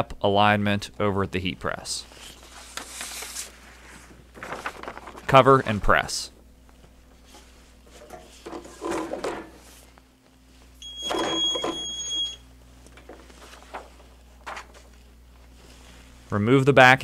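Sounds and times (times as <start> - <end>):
handling noises: 6.7 - 16.0
high steady electronic beep: 10.8 - 12.4.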